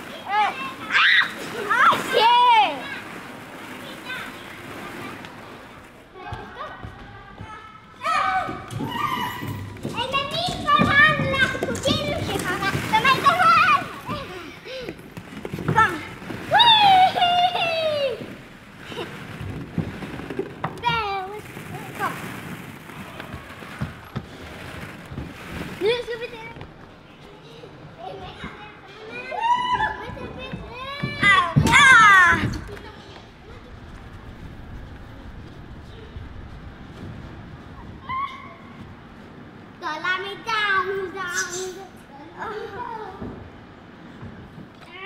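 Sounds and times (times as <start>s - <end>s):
children shouting and squealing: 0.3s - 3.1s, 8.0s - 11.3s, 29.0s - 32.6s, 37.8s - 38.8s, 41.2s - 43.0s.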